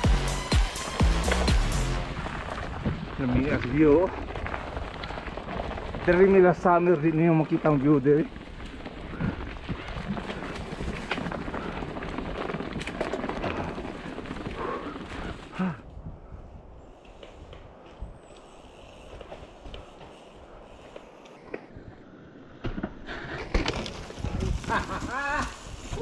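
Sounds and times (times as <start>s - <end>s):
bike rolling over dirt trail: 0.8s - 15.8s, 16.8s - 26.0s
bike rolling onto rock: 2.1s - 15.6s, 22.6s - 26.0s.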